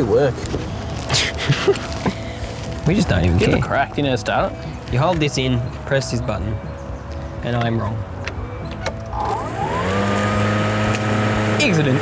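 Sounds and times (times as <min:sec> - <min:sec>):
electric lawn mower whine: 0:08.7 - 0:12.0.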